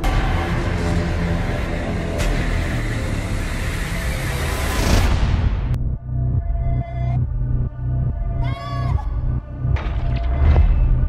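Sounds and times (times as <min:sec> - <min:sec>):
heavy low drone: 0:00.0 - 0:08.3.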